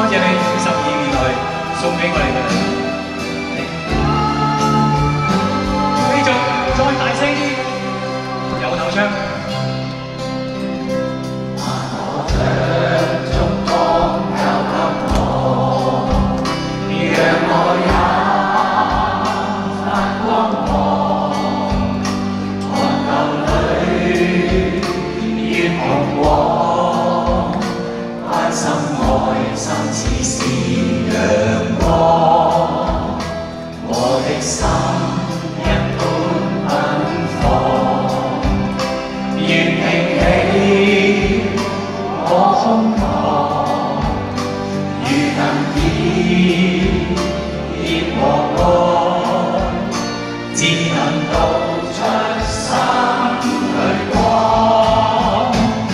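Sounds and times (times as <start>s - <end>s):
man singing into a microphone: 0.0s - 2.9s, 3.6s - 9.7s, 22.7s - 38.4s, 39.4s - 55.9s
band playing a steady beat: 0.0s - 55.9s.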